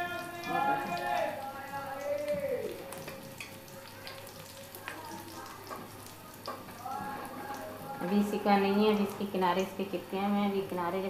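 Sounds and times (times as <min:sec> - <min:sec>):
batter sizzling on iron griddle: 0:00.0 - 0:10.0.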